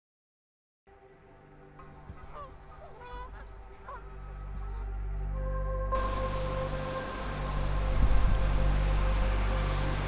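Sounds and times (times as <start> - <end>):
ambient music drone: 0.9 - 10.0
goose-like honking calls: 2.1 - 4.8.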